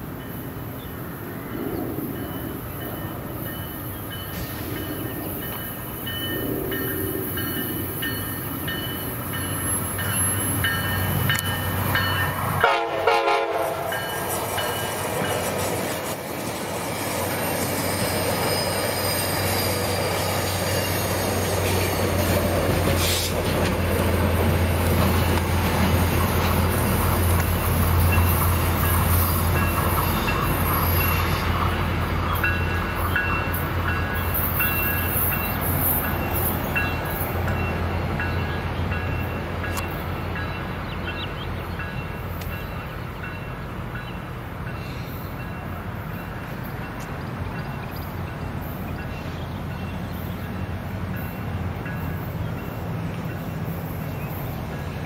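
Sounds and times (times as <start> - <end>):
wheels rumbling on rails: 0.0 - 55.0
train horn blast: 12.6 - 14.3.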